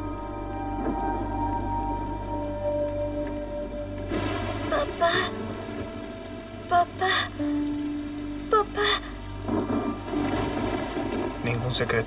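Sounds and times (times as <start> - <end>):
low sustained music: 0.0 - 12.0
steady rain: 0.0 - 12.0.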